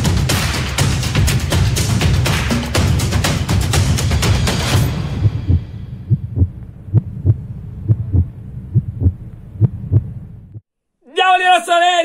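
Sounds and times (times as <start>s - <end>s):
heartbeat thumps: 5.1s - 10.6s
steady low hum: 5.1s - 10.6s.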